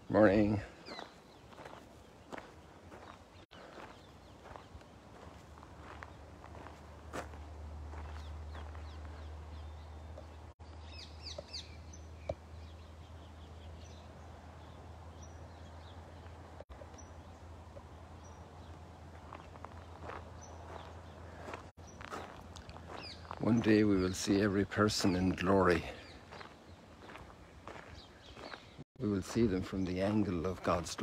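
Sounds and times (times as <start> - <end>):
footsteps on sand: 0.4 - 10.8, 18.6 - 24.4, 25.0 - 30.8.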